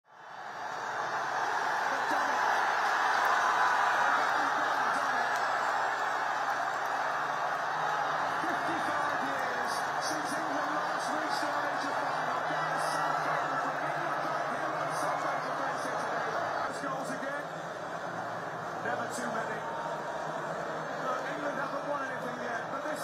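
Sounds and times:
crowd cheering and shouting: 0.1 - 23.0.

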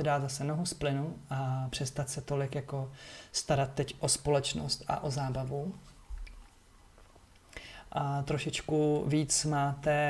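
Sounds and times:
person speaking: 0.0 - 5.9, 7.9 - 10.0
person breathing: 2.9 - 3.4, 7.5 - 7.9.

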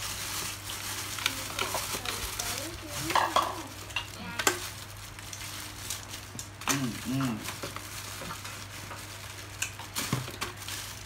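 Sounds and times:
plastic bag crinkling: 0.0 - 11.0.

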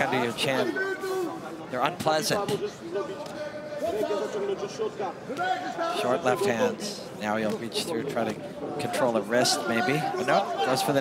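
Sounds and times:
men talking: 0.0 - 11.0.

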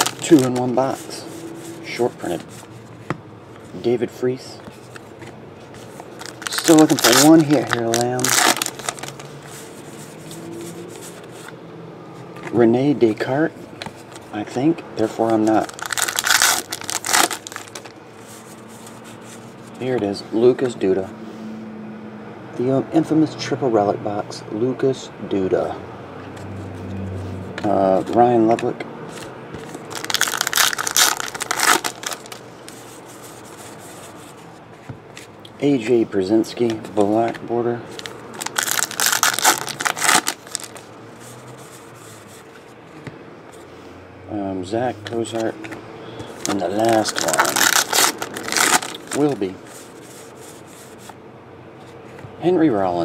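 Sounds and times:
card pack wrapper tearing: 0.0 - 0.9, 6.1 - 9.3, 15.0 - 17.9, 29.6 - 32.8, 37.9 - 40.9, 46.4 - 50.2
trading cards rustling: 0.0 - 3.8, 4.5 - 11.6, 13.8 - 20.7, 27.6 - 42.8, 45.2 - 51.2.

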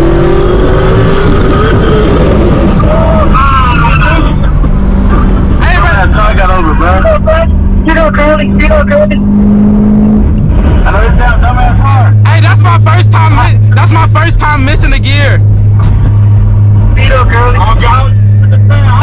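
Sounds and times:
car engine drone inside cabin: 0.0 - 19.0.

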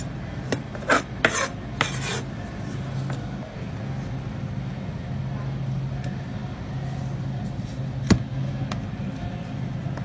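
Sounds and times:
knife scraping hard cheese: 0.8 - 2.3.

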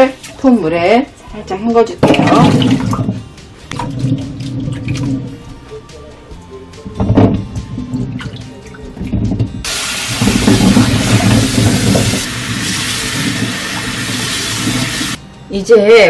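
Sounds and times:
tap water splashing: 2.0 - 5.4, 7.0 - 15.2.

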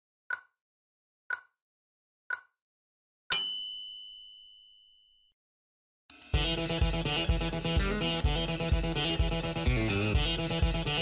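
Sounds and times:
timer tick: 0.3 - 0.6, 1.3 - 1.6, 2.3 - 2.6
bright bell-like ding: 3.3 - 5.3.

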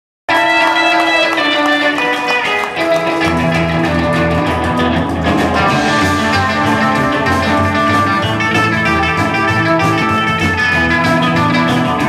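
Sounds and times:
drum kit beat: 0.3 - 12.0
electric guitars: 0.3 - 12.0
upright double bass: 3.0 - 12.0.

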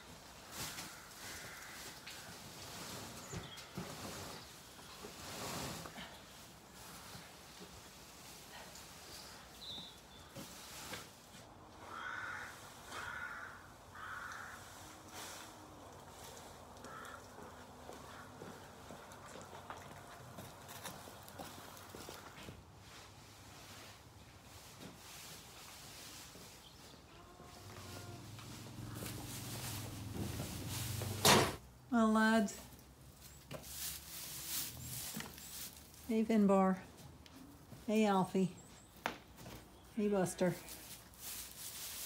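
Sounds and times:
straw rustling: 22.9 - 31.2, 32.0 - 37.7, 39.7 - 42.0.

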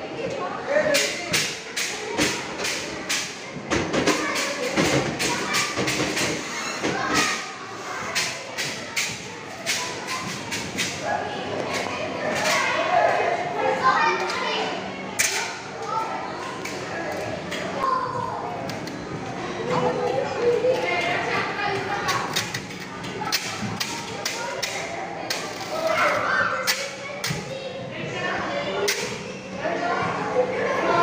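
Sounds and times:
children chattering: 0.0 - 31.0.

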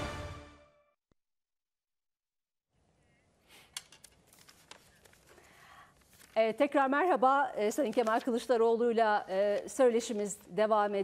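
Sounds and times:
paper clicks and rustles: 3.7 - 6.7, 7.6 - 8.6.

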